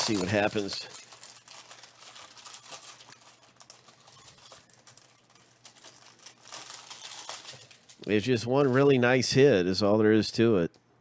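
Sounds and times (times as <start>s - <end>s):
plastic shrink-wrap crinkling: 0.0s - 9.1s.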